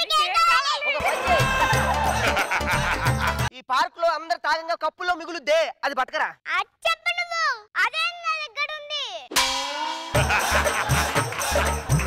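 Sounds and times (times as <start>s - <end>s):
child speaking: 0.0s - 1.0s, 6.4s - 9.3s
loud metallic clang ringing: 9.4s - 10.2s.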